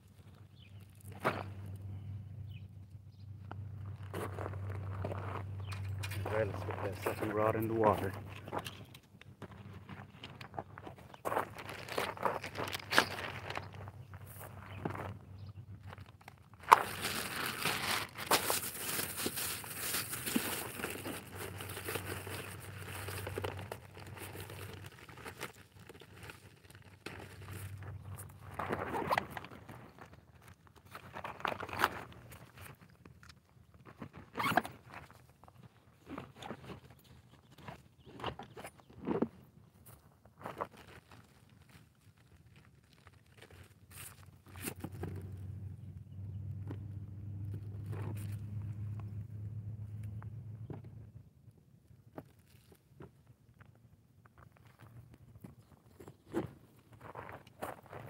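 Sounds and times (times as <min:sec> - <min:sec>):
rustling crinkling handling: 0:04.0 - 0:15.2, 0:15.8 - 0:37.7, 0:40.4 - 0:45.4.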